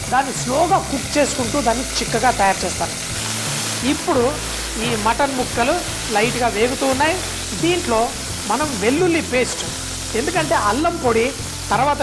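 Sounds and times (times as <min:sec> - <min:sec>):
meat sizzling in oil: 0:00.0 - 0:12.0.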